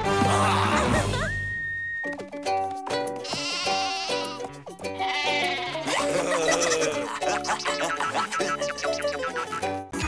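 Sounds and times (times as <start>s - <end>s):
cartoon background music: 0.0s - 10.0s
sheep bleating: 3.2s - 7.7s.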